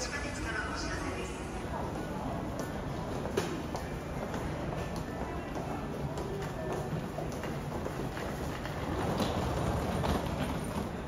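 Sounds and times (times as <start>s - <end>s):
low rumble and murmur: 0.0s - 11.0s.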